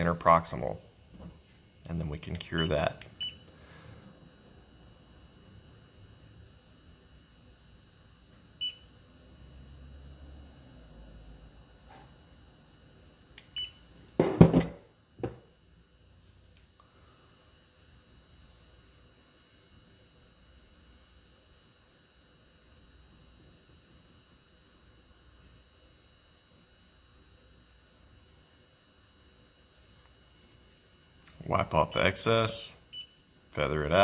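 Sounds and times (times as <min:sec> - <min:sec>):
curing light beep: 0:02.3 - 0:03.5, 0:08.6 - 0:09.0, 0:13.1 - 0:13.9, 0:31.7 - 0:34.0
device clattering on bench: 0:14.2 - 0:15.4.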